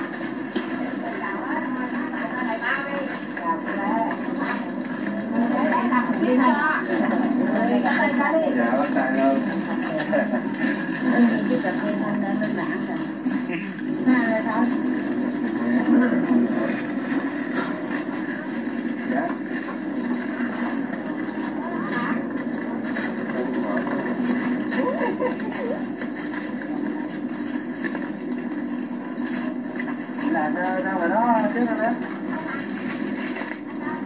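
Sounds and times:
faint voices talking: 0.0s - 34.0s
steady background noise: 0.0s - 34.0s.

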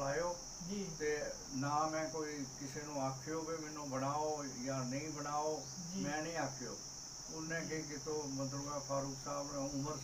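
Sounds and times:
high-pitched insect drone: 0.0s - 10.0s
man talking: 0.0s - 10.0s.

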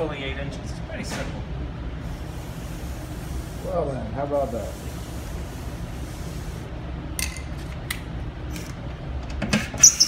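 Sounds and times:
steady low hum: 0.0s - 9.5s.

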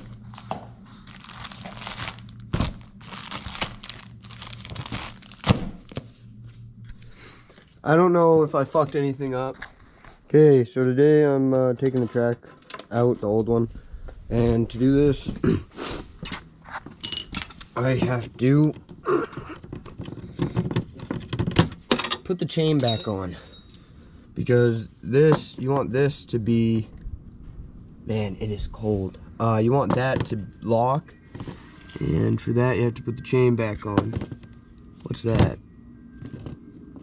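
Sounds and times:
plastic bags crinkling: 0.0s - 5.9s
steady low hum: 0.0s - 37.0s.

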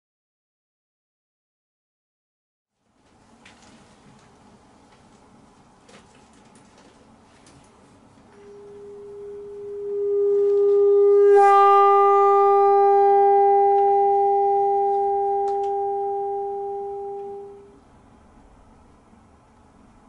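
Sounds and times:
bassoon long high note: 8.4s - 17.8s.

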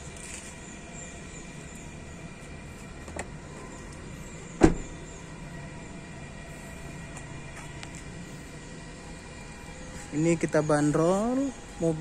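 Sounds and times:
car door shutting thump: 4.6s - 5.0s.

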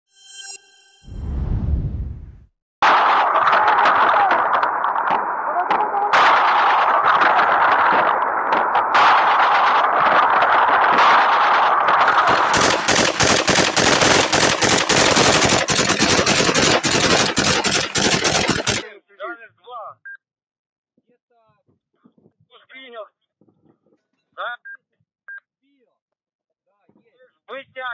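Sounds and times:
automatic machine-gun fire: 2.8s - 18.8s.

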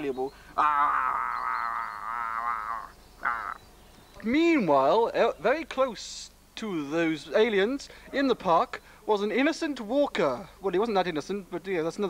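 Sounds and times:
person making warbling creature noise: 0.6s - 3.6s.

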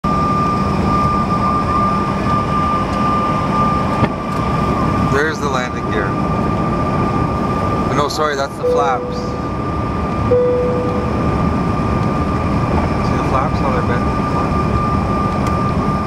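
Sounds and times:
steady high whine: 0.1s - 16.0s
turbofan engines: 0.1s - 16.0s
low hum: 8.5s - 13.2s.

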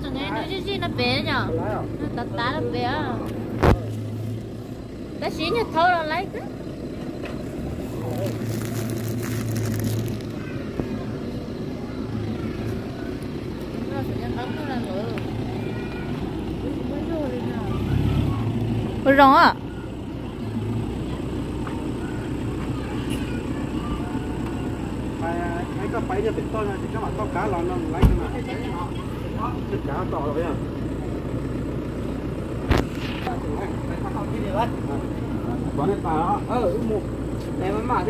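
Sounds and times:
people talking: 0.0s - 4.0s, 5.2s - 6.6s, 7.8s - 8.6s, 10.2s - 31.2s, 32.7s - 38.0s
truck engine idling: 0.0s - 38.0s.

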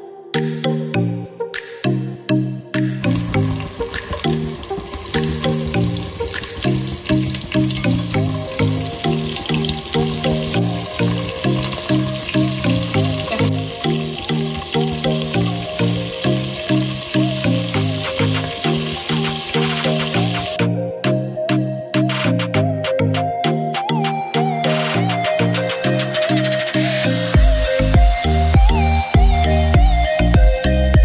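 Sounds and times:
background music: 0.0s - 31.0s
prawns sizzling in hot oil: 3.1s - 20.6s.

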